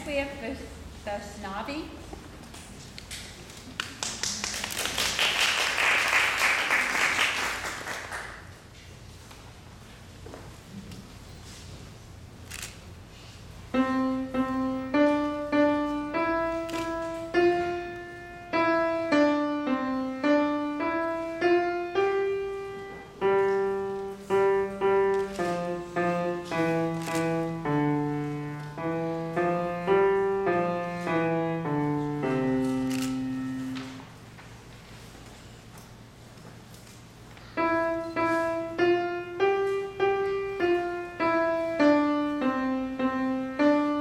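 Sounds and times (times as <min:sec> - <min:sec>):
solo grand piano melody: 0:13.7 - 0:34.3, 0:37.4 - 0:44.0.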